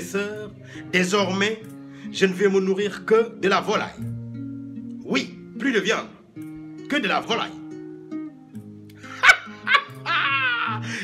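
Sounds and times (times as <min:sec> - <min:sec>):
classical guitar notes: 0:00.0 - 0:11.0.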